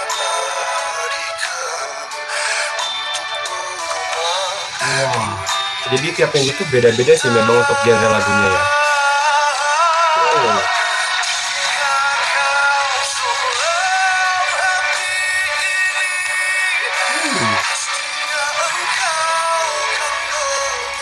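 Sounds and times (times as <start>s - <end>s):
instrumental backing music: 0.8s - 9.3s, 10.0s - 20.9s
man singing long wavering notes: 10.0s - 10.7s, 17.0s - 17.6s.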